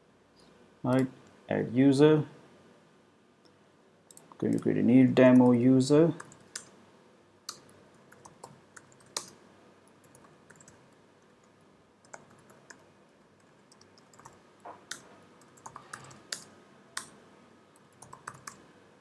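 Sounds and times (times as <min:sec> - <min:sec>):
computer keyboard typing: 0:04.1 - 0:05.6, 0:06.2 - 0:06.7, 0:07.5 - 0:17.2, 0:17.8 - 0:18.6.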